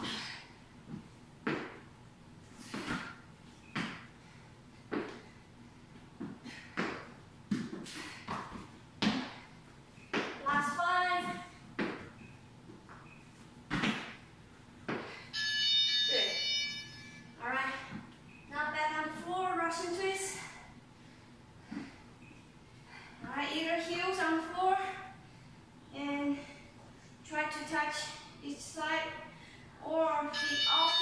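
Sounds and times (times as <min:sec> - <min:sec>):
thumps on rubber gym floor: 0:00.9 - 0:01.9, 0:02.6 - 0:04.1, 0:04.9 - 0:05.2, 0:06.2 - 0:09.5, 0:10.1 - 0:12.2, 0:13.6 - 0:15.2
steady high tone: 0:15.3 - 0:17.3, 0:30.3 - 0:31.0.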